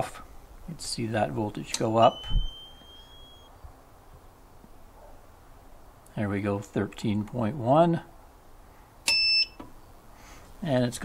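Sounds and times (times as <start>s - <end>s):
short electronic beep: 2.1s - 3.5s.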